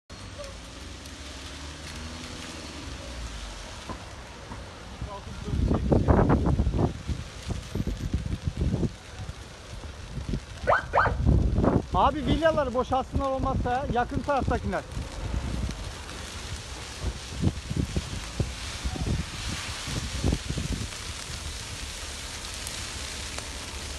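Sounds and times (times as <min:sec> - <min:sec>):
fire crackling and popping: 0:00.1 - 0:23.9
steady low rumble: 0:05.0 - 0:23.9.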